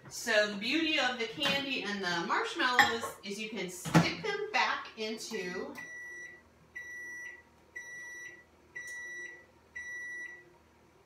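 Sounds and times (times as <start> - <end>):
microwave oven beeping: 5.7 - 10.6.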